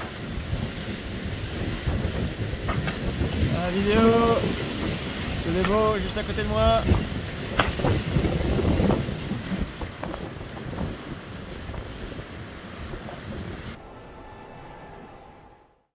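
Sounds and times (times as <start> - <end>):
water slapping: 0.0 - 13.8
water rushing along hull: 0.0 - 15.2
wind buffeting microphone: 0.0 - 15.4.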